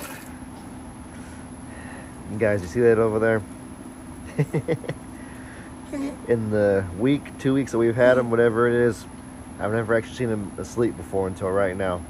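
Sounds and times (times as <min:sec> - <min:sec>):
drum fan humming: 0:00.0 - 0:12.0.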